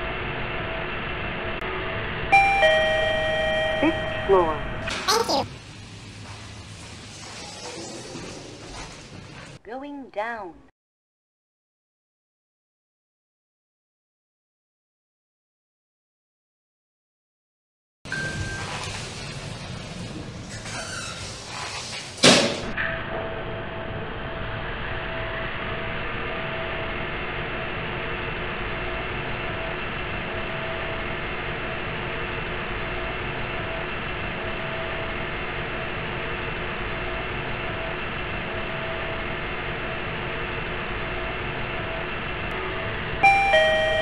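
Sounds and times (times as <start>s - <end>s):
lift ride hum: 36.8s - 44.0s
electronic arrival chime: 42.6s - 44.0s.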